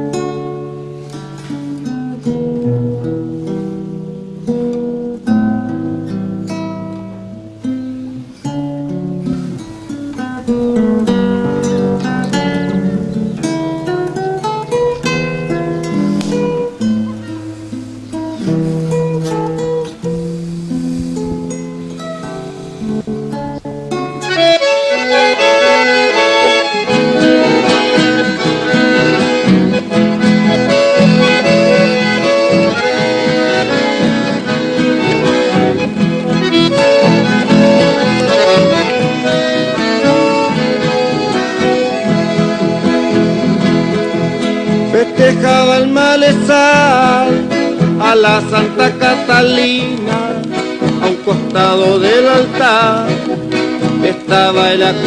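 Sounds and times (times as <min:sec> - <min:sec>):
acoustic guitar: 0:00.0 - 0:55.0
accordion and band: 0:06.9 - 0:55.0.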